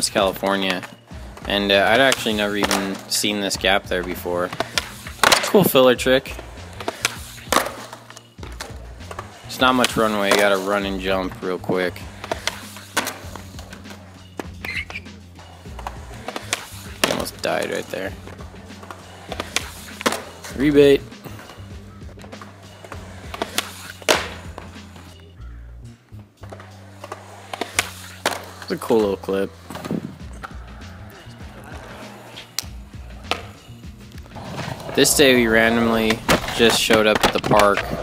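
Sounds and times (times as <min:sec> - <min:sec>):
skateboard landing on concrete: 0:00.0 - 0:25.3, 0:26.1 - 0:38.0
background music with bass: 0:00.0 - 0:38.0.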